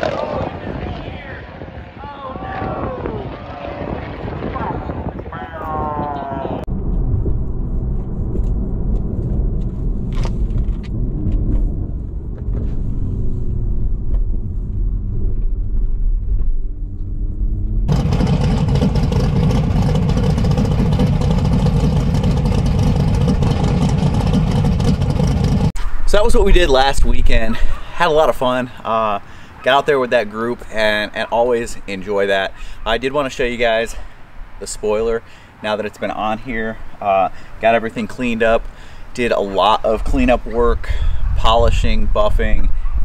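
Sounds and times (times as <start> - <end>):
voices: 0.0 - 6.7, 26.1 - 34.0, 34.6 - 42.7
car engine accelerating: 6.7 - 25.8.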